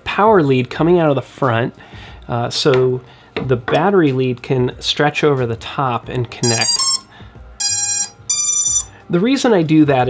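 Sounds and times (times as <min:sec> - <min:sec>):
high-pitched electronic beeps: 0:06.4 - 0:08.9.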